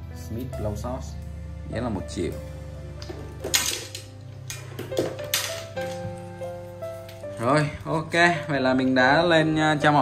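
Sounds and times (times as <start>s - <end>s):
background music: 0.0s - 10.0s
fishing gear clinking: 3.0s - 6.4s.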